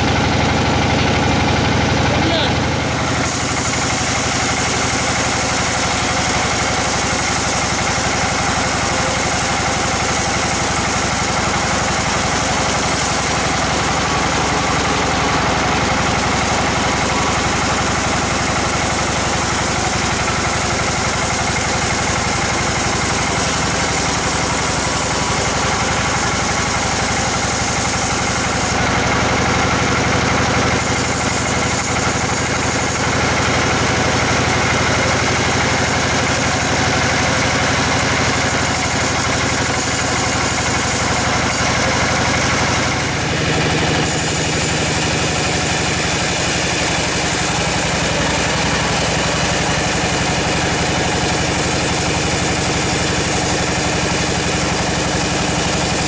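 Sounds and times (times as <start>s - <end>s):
bandsaw cutting through log: 0.0s - 56.0s.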